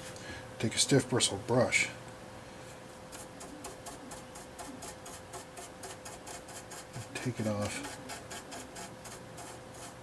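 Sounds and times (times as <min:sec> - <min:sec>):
bristle brush scrubbing plastic: 0:03.8 - 0:10.0.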